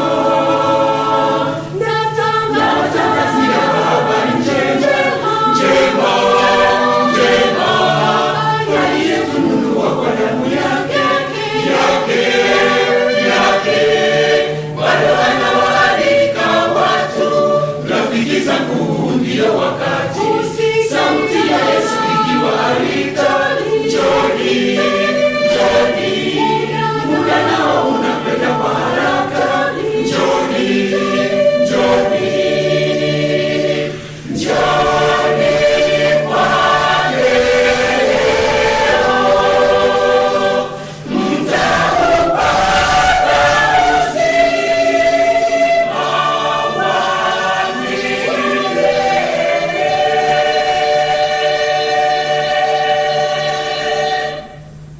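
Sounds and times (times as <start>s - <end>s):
choir singing in harmony: 0.0s - 54.9s.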